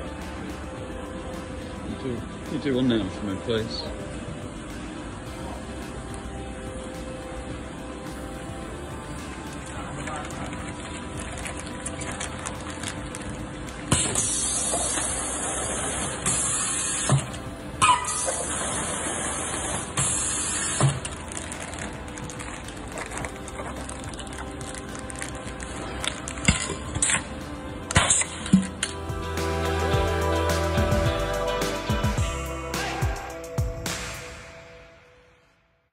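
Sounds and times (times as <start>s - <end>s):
machine hum: 0.0s - 34.2s
machine nozzle hiss: 13.9s - 17.4s, 18.1s - 21.1s.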